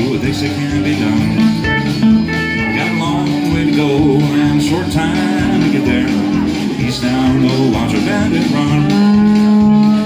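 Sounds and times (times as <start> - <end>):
pedal steel guitar country song: 0.0 - 10.0.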